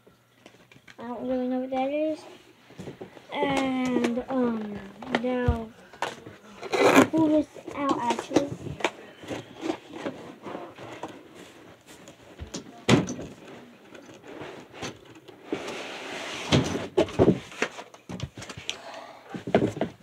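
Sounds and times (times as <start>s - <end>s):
cardboard scraping: 6.6s - 12.3s, 14.1s - 18.5s.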